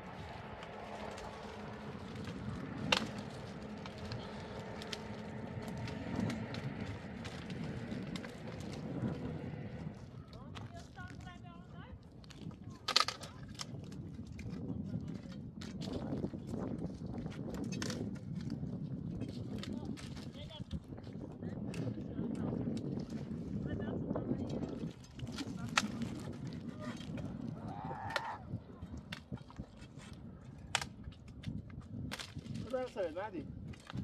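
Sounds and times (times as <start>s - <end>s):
footsteps crunching on stony ground: 0.0s - 10.0s
steady low rumble: 0.0s - 10.6s
brushwood rustling and snapping: 0.2s - 9.8s, 12.2s - 14.5s, 24.9s - 34.0s.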